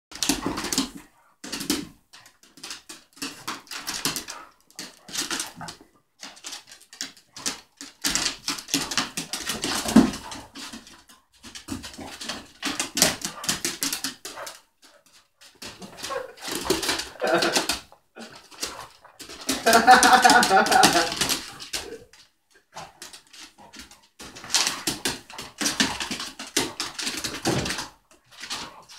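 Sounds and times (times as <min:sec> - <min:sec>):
dogs scuffling on wooden floor: 0:00.1 - 0:28.9
dog noises: 0:09.5 - 0:28.9.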